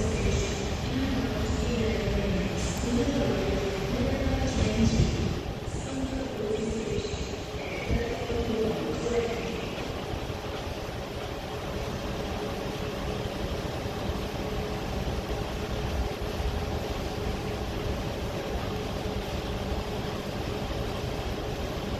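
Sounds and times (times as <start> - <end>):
train rumbling along tracks: 0.0 - 21.9.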